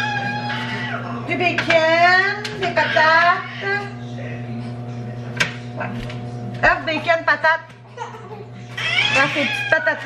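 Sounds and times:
kitchen appliance humming: 0.0 - 10.0.

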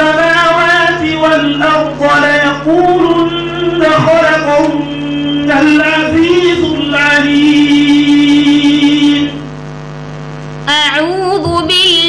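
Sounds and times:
person chanting recitation: 0.0 - 9.5
electrical mains hum: 0.0 - 12.0.

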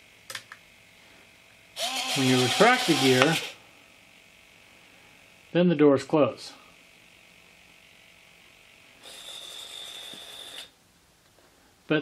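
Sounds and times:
electric servos whirring: 1.8 - 3.6, 9.0 - 10.8.

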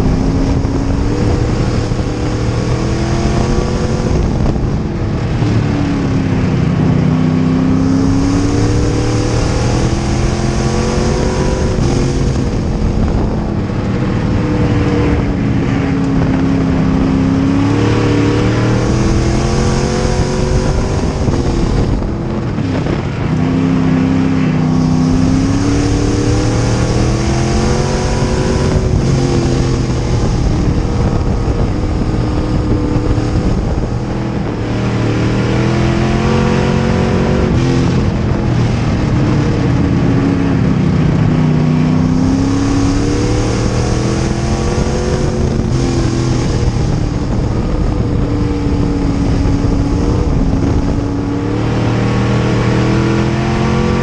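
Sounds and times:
race car engine revving: 0.0 - 54.0
wind roar: 0.0 - 54.0.

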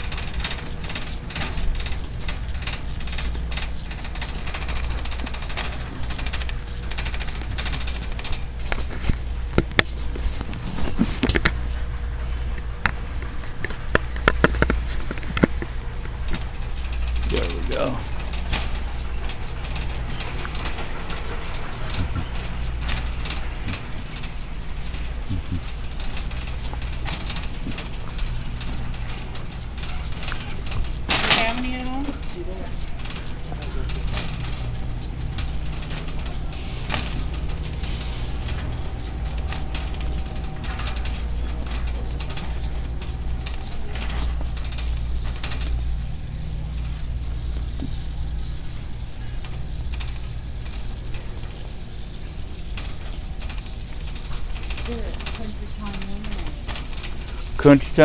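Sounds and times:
low hum: 0.0 - 58.0
shopping cart rattling on concrete: 0.0 - 58.0.

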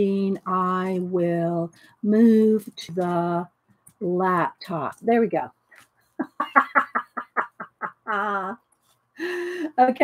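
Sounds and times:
woman laughing: 6.2 - 8.6.

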